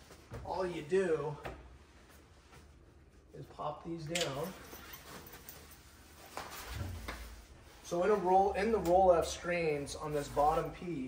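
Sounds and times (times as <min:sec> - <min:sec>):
fabric rustling: 0:04.4 - 0:08.9.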